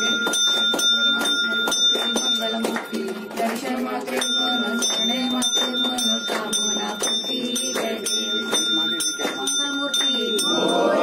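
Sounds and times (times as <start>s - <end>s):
rhythmic hand clapping: 0.0s - 11.0s
temple bell ringing: 0.0s - 11.0s
voices: 0.0s - 11.0s.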